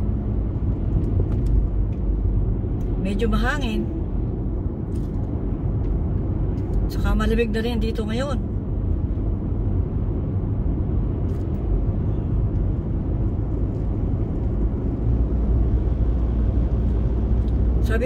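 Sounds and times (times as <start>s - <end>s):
car road and engine rumble: 0.0s - 18.0s.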